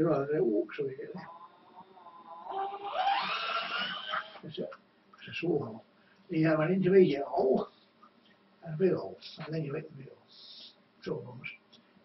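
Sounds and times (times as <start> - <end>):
electric drill whining: 2.5 - 4.4.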